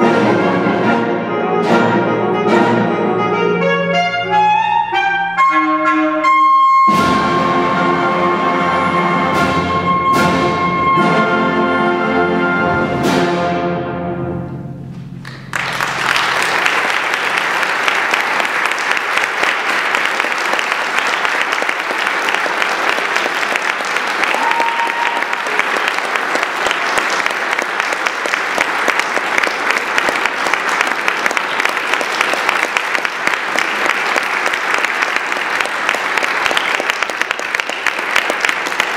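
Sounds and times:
audience applauding: 15.2s - 38.9s.

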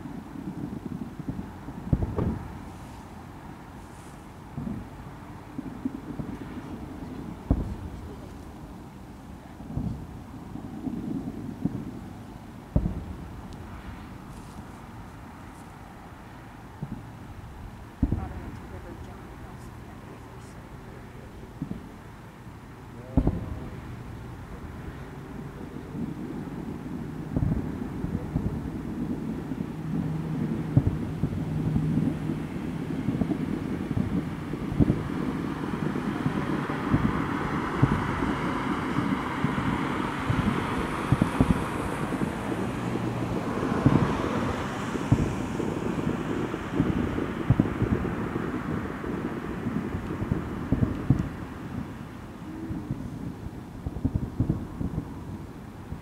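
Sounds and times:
distant firework booms: 0.0s - 56.0s
wind rumbling on microphone: 0.0s - 56.0s.

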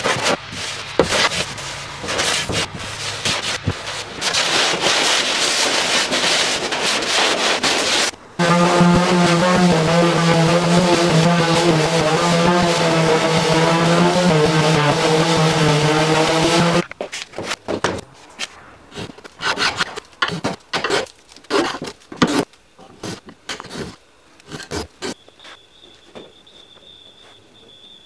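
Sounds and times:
hand sanding wood: 0.0s - 17.6s
electric orbital sander humming: 8.4s - 16.9s.

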